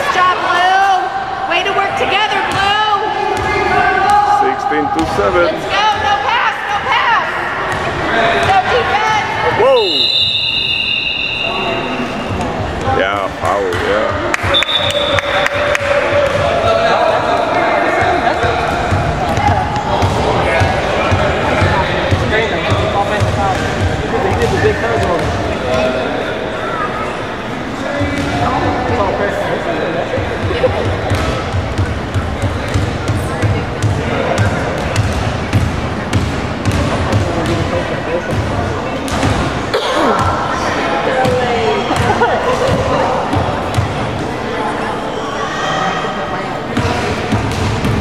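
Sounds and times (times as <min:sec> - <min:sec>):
referee's whistle: 0:09.7 - 0:12.3, 0:14.5 - 0:15.5.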